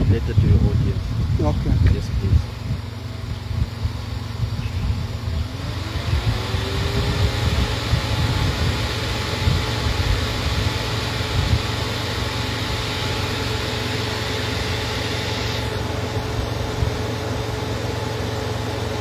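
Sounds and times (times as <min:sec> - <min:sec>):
low uneven rumble: 0:00.0 - 0:08.7
engine running: 0:00.0 - 0:19.0.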